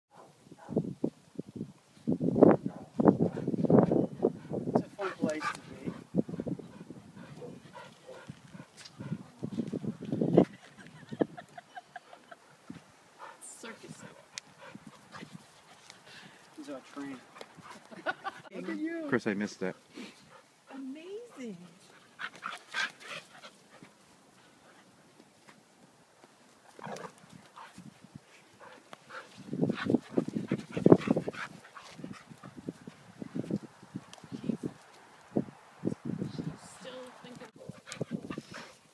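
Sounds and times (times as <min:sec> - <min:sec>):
soft dog sounds: 0:04.2 - 0:09.7
dogs play-wrestling noises: 0:21.3 - 0:25.6, 0:26.5 - 0:27.9, 0:28.6 - 0:33.1.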